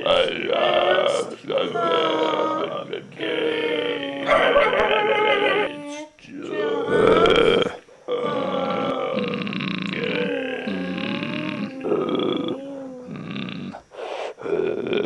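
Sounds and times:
person grunting and groaning: 0:00.0 - 0:05.8, 0:06.5 - 0:13.5.

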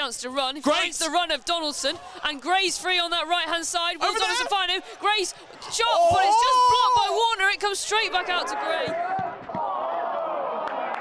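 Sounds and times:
sports commentator talking: 0:00.0 - 0:09.2.

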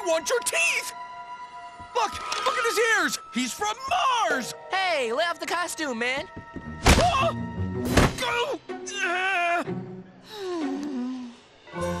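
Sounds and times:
steady pitched background music: 0:00.0 - 0:12.0.

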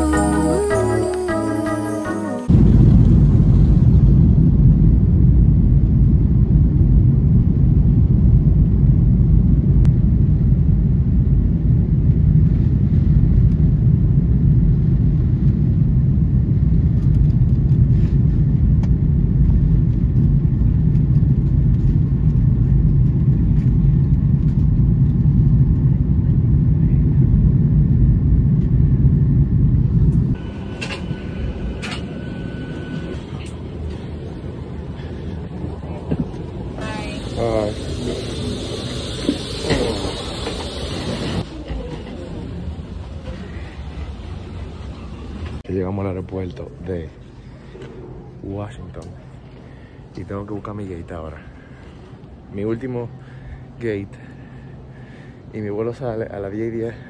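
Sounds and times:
jet engine and airflow rumble: 0:00.0 - 0:57.0.

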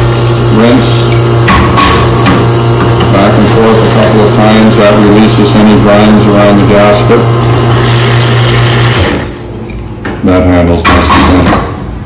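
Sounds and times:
espresso machine pump running: 0:00.0 - 0:09.4.

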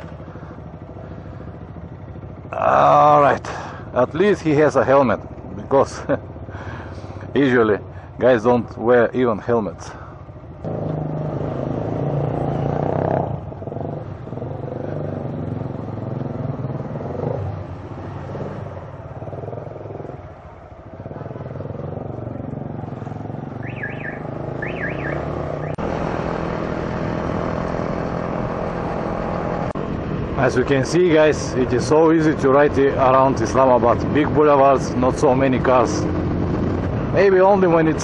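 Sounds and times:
motorcycle engine running: 0:00.0 - 0:07.3, 0:10.0 - 0:38.0
road and wind noise: 0:00.0 - 0:38.0.

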